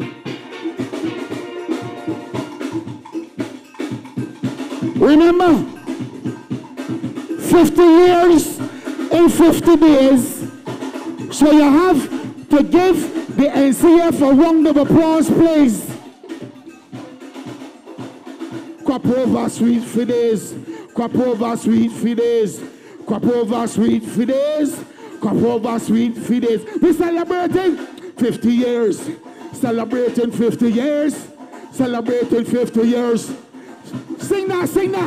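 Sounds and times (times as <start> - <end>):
steel pan notes: 0.0 - 21.4
snare drum strokes: 0.0 - 35.0.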